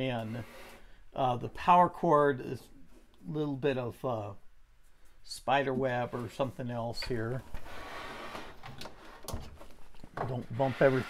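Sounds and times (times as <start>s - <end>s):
plastic rubbing and scraping: 6.1s - 11.0s.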